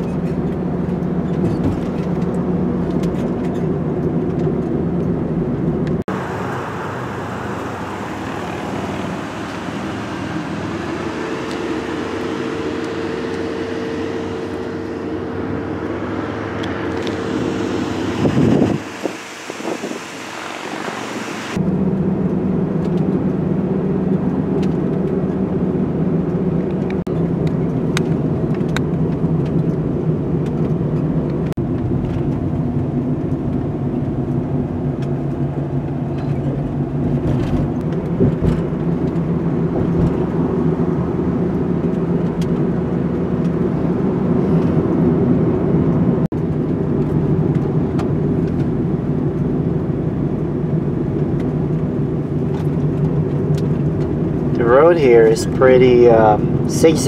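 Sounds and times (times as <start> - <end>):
engine and road noise in cab: 0.0 - 57.0
vehicle rushing past: 6.1 - 21.6.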